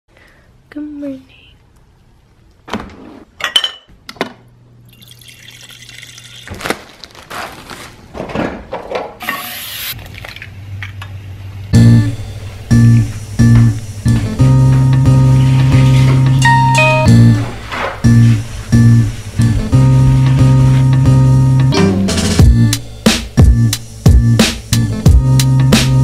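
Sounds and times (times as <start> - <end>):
plastic bag crinkling: 6.3 - 8.1
deep bass: 11.8 - 26.0.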